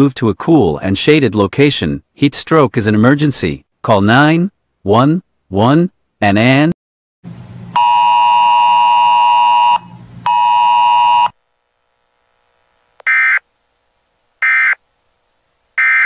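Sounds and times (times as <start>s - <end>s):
data tone bursts: 7.8s - 11.4s, 13.0s - 13.4s, 14.4s - 14.8s, 15.8s - 16.0s
electronic buzzer tone: 7.8s - 11.4s, 13.0s - 13.4s, 14.4s - 14.8s, 15.8s - 16.0s.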